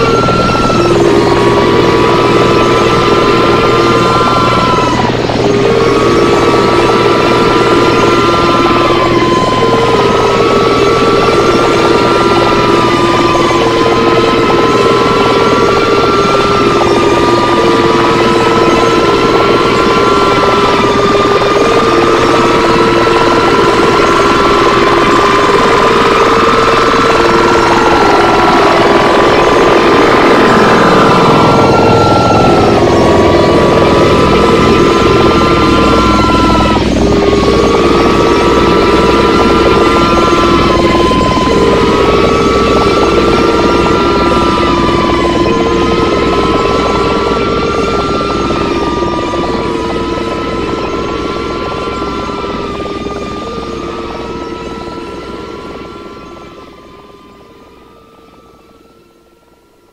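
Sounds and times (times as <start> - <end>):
harsh noise electronic music: 0.0 - 58.0.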